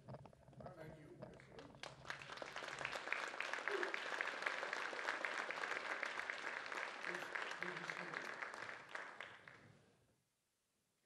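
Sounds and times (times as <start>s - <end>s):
audience applauding: 1.6s - 9.8s.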